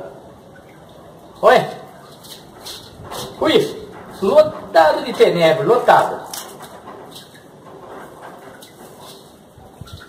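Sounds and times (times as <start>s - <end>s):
rustling of dry bran: 6.2s - 10.0s.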